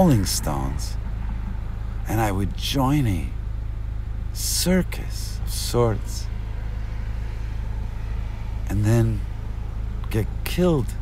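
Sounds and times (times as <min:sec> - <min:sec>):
spoken word: 0:00.0 - 0:01.0, 0:02.0 - 0:03.4, 0:04.3 - 0:06.3, 0:08.7 - 0:09.4
steady low rumble: 0:00.0 - 0:11.0.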